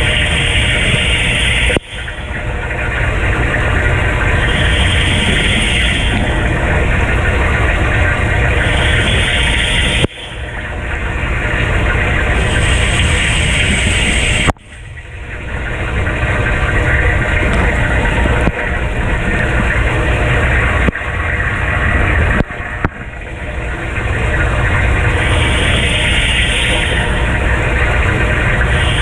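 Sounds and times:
dishwasher pump humming: 0:00.0 - 0:29.0
water jets splashing: 0:00.0 - 0:29.0.

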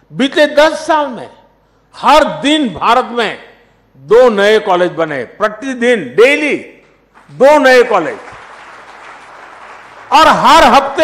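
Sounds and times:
speech: 0:00.1 - 0:08.2, 0:10.1 - 0:11.0
audience applauding: 0:07.2 - 0:11.0.

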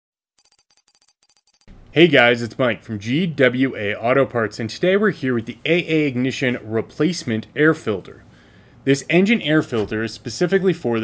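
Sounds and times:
man's voice: 0:02.0 - 0:08.2, 0:08.9 - 0:11.0.

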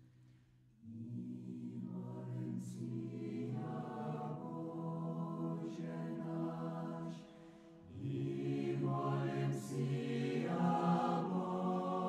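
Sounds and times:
chanted vocal music: 0:00.8 - 0:12.0.

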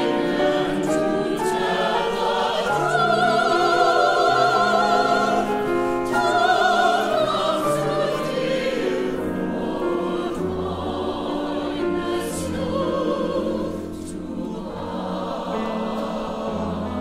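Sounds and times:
grand piano: 0:00.0 - 0:17.0
mixed chorus singing: 0:00.0 - 0:17.0.

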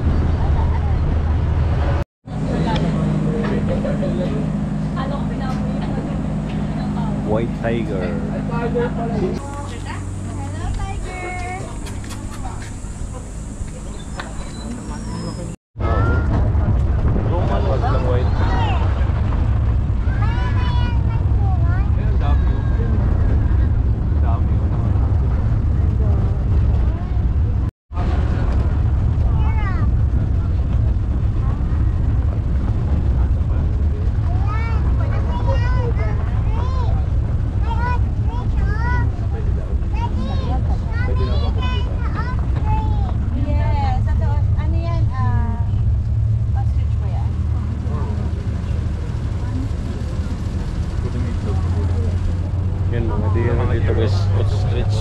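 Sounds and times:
vehicle rumbling: 0:00.0 - 0:55.0
chirping calls: 0:10.3 - 0:15.6.

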